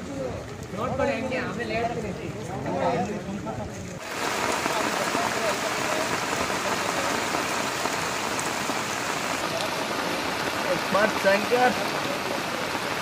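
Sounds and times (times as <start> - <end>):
heavy rain pouring: 0.0 - 13.0.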